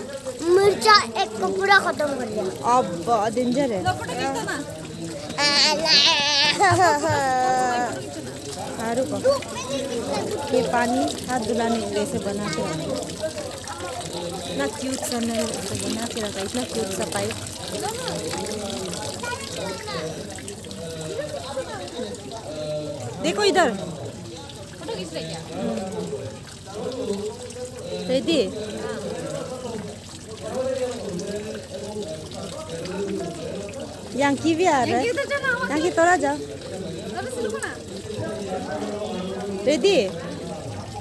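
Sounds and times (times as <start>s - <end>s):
people and children talking: 0.0s - 27.3s, 32.8s - 41.0s
water trickling from a tap: 0.0s - 41.0s.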